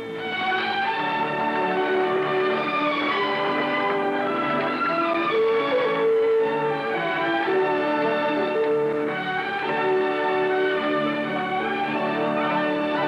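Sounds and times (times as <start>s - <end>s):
orchestral strings: 0.0s - 13.0s
violin melody: 0.0s - 13.0s.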